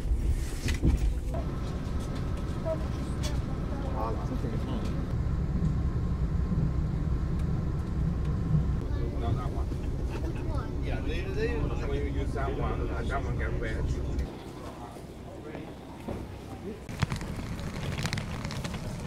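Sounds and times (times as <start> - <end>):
train rumbling: 0.0 - 19.0
faint passengers' voices: 0.9 - 5.1, 8.8 - 19.0.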